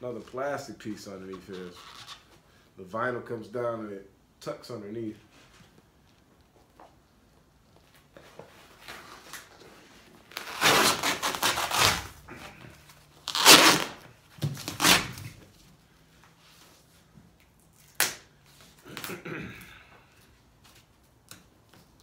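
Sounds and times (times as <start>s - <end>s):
vinyl covering tearing off metal: 10.2s - 12.6s, 13.2s - 15.4s.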